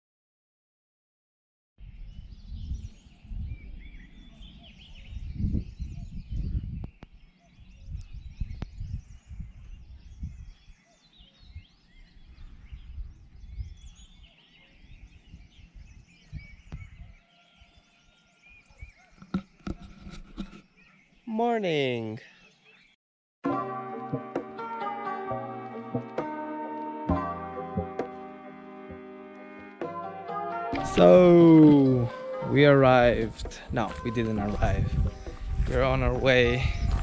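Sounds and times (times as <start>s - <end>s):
wind buffeting microphone: 1.8s - 17.8s, 32.4s - 37.0s
small birds chirping: 1.8s - 23.0s, 30.8s - 37.0s.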